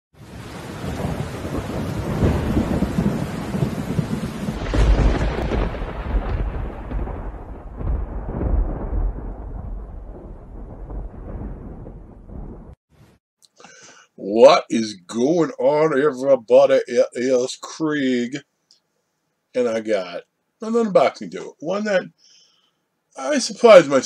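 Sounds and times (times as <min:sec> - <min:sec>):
steady rain hiss: 0:00.2 - 0:07.3, 0:13.6 - 0:24.0
rumbling thunder: 0:00.2 - 0:12.8.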